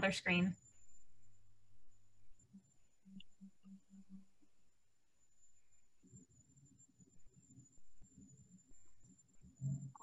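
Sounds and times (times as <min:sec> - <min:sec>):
faint steady high tone: 0:00.0 - 0:10.0.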